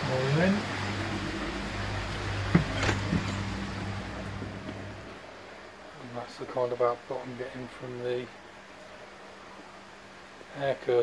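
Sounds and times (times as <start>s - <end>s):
air pump humming: 0.0s - 5.3s
sharp knocks: 2.4s - 3.7s.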